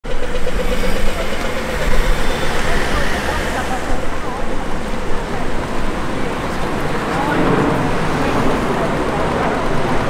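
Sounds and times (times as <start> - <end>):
car traffic: 0.0 - 10.0
people talking: 0.3 - 10.0.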